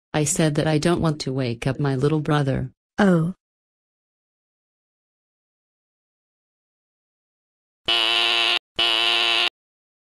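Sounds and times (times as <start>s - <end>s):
doorbell buzzer: 7.9s - 9.6s.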